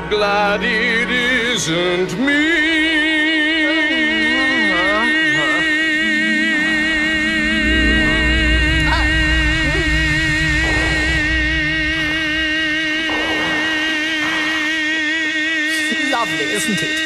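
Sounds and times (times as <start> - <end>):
man singing a long note: 0.0 - 16.1
low rumble: 5.6 - 15.7.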